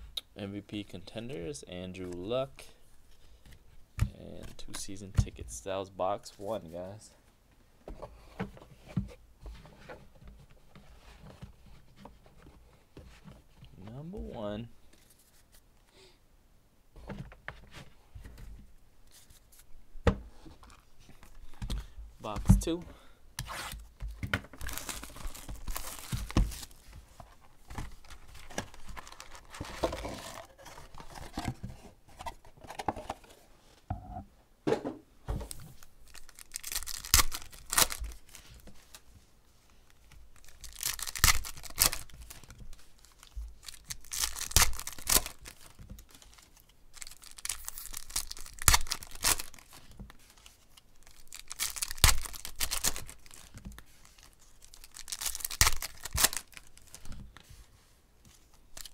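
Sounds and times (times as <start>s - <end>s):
foil packs crinkling and tearing: 24.6s - 26.8s, 27.9s - 31.2s, 35.5s - 38.6s, 40.4s - 57.2s.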